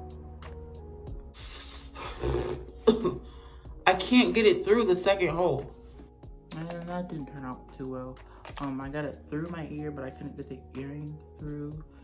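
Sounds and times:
woman clearing her throat: 2.0s - 3.2s.

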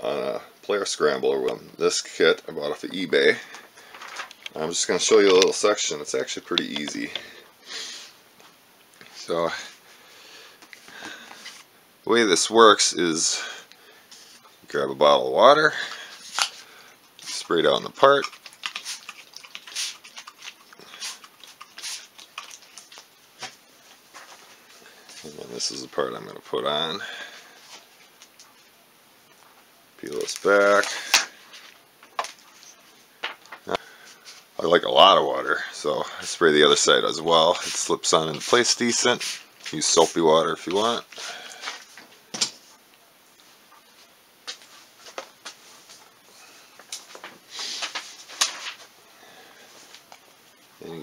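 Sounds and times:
handling clicks and rustles: 3.6s - 5.8s.

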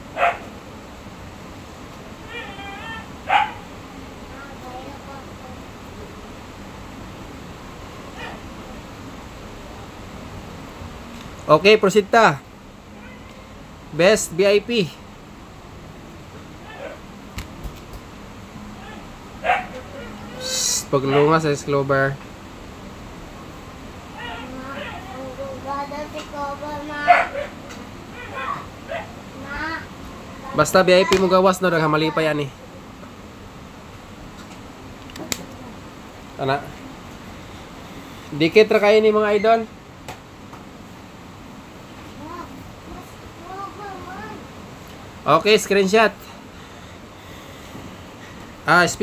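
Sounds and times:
dog barking: 0.2s - 0.5s, 2.3s - 3.7s, 8.2s - 8.4s, 16.6s - 17.0s, 18.8s - 20.4s, 21.1s - 21.3s, 24.1s - 25.1s, 27.0s - 29.2s
faint high dog calls: 2.2s - 3.7s, 8.1s - 8.5s, 16.6s - 17.0s, 18.8s - 21.4s, 24.1s - 25.2s, 27.0s - 29.2s.

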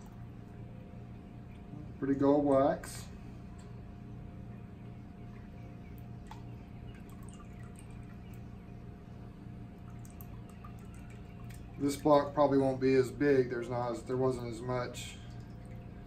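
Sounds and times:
steady low hum: 0.0s - 16.0s
melted wax dripping into tub: 9.7s - 12.2s.

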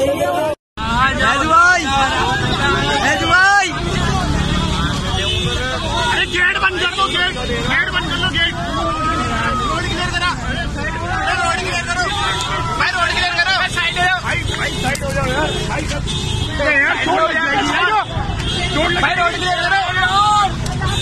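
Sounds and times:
crowd shouting: 0.0s - 21.0s.

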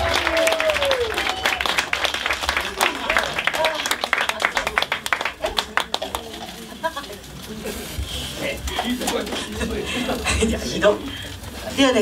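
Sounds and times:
audience clapping: 0.0s - 6.6s
murmur of voices: 0.0s - 12.0s.

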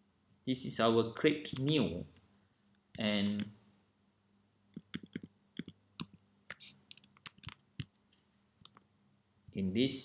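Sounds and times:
keyboard and mouse clicks: 4.7s - 8.0s, 8.6s - 8.9s.

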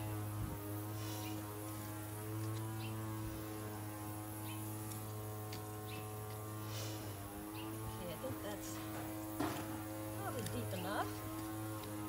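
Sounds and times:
steady low hum: 0.0s - 12.0s
trowel scraping soil: 4.6s - 7.2s, 8.7s - 12.0s.

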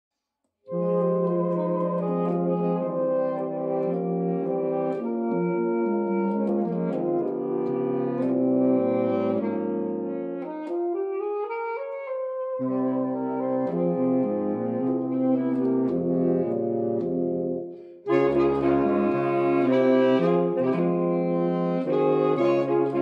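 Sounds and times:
saxophone quartet chords: 0.7s - 23.0s.

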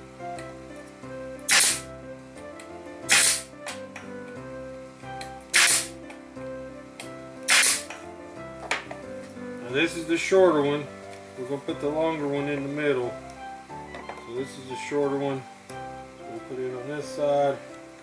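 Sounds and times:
guitar music: 0.0s - 18.0s
pneumatic nailer firing: 1.5s - 1.9s, 3.1s - 3.8s, 5.5s - 6.0s, 7.5s - 8.0s.

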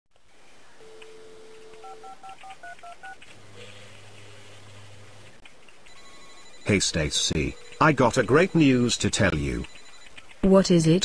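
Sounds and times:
telephone dial tone: 0.8s - 3.8s, 5.9s - 8.6s, 9.4s - 10.3s
low steady tone: 5.9s - 10.2s.

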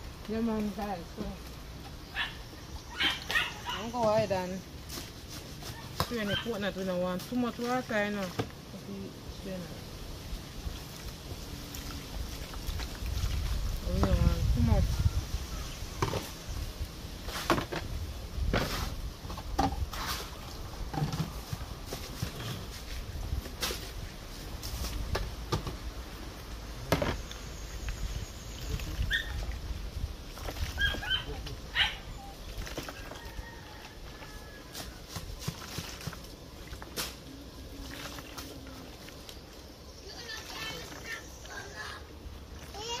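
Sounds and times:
hands kneading dough in a basin: 3.0s - 9.0s, 32.3s - 39.5s.

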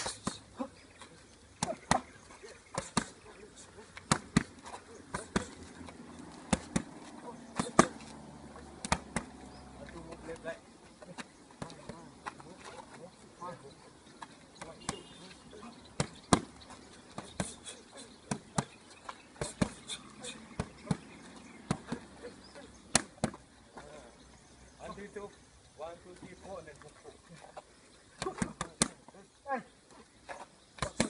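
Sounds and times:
punches smacking focus mitts: 4.0s - 5.6s, 6.4s - 8.0s, 8.8s - 9.4s, 15.9s - 17.6s.

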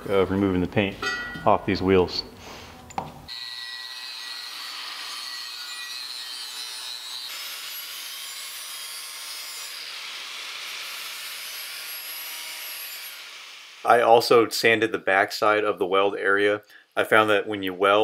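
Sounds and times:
angle grinder grinding metal: 3.3s - 13.8s.

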